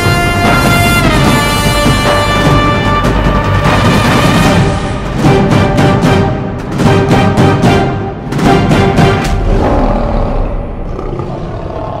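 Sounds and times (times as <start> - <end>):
lion roaring: 9.3 - 12.0.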